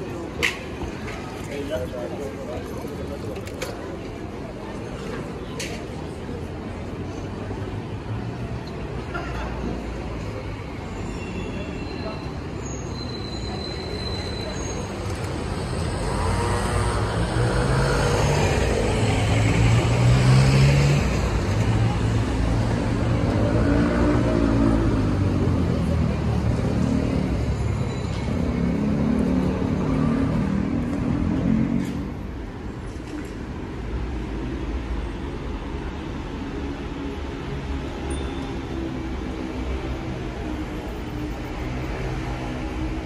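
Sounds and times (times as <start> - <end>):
car engines passing: 13.8 - 43.0.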